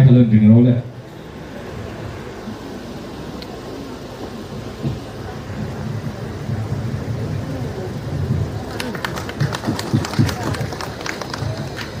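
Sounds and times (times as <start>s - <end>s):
audience voices murmuring: 0.0s - 12.0s
steady low rumble: 0.0s - 12.0s.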